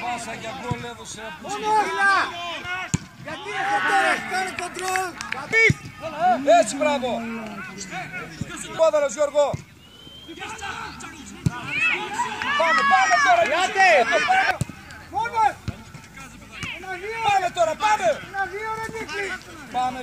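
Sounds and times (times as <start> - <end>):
men shouting: 1.2 - 9.0, 10.4 - 14.6.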